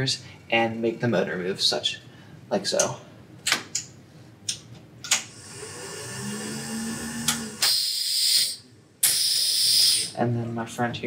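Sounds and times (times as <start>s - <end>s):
compressed air hissing: 5.3s - 10.1s
small motor humming: 5.3s - 10.1s.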